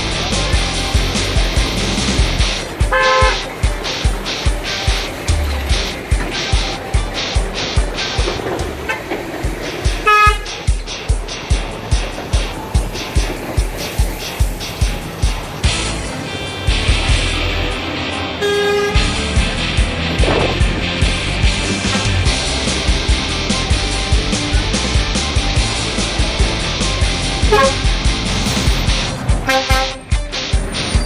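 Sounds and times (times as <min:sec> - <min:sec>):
music with a steady beat: 0:00.0 - 0:31.0
truck horns tooting: 0:00.1 - 0:10.8, 0:15.8 - 0:19.4, 0:27.4 - 0:31.0.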